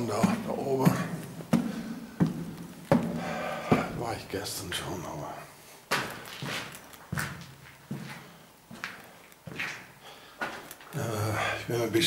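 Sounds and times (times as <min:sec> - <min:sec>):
footsteps on stone floor: 0:00.0 - 0:04.3, 0:05.9 - 0:11.1.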